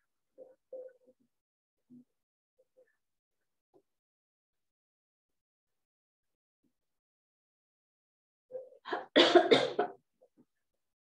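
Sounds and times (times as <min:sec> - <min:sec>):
woman coughing: 0:08.9 - 0:10.0.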